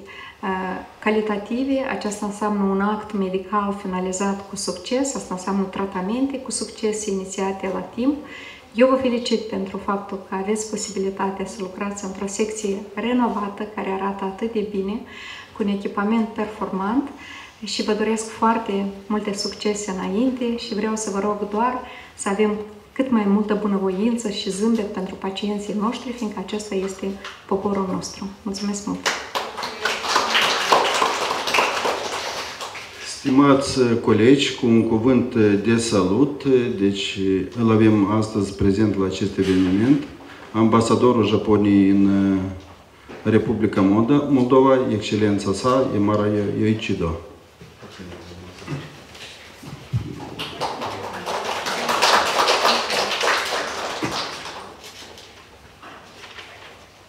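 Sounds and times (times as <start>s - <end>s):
audience applauding: 29.1s - 33.0s, 50.1s - 55.0s.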